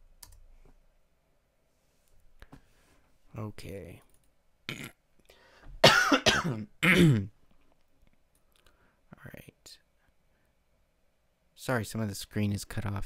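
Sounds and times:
man coughing: 5.8s - 7.4s.

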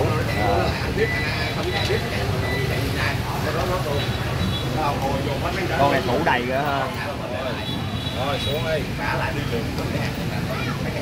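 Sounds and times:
faint voices talking: 0.0s - 11.0s
low rumble of street traffic: 0.0s - 11.0s.

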